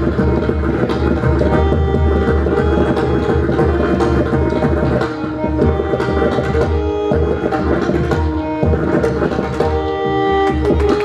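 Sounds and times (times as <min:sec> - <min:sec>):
fast hand drumming: 0:00.0 - 0:11.0
harmonium melody: 0:00.0 - 0:11.0.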